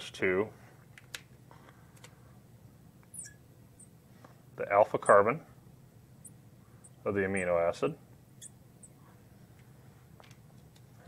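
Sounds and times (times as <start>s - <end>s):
marker squeaking on glass: 3.1s - 3.9s.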